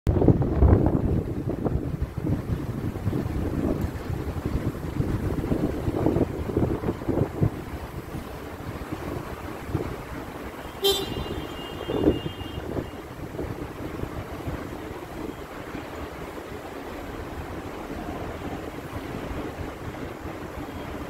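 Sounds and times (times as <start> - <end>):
wind buffeting microphone: 0.1 - 21.0.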